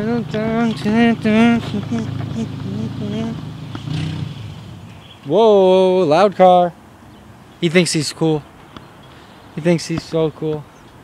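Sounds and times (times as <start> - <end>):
car engine and exhaust rumbling: 0.0 - 5.4.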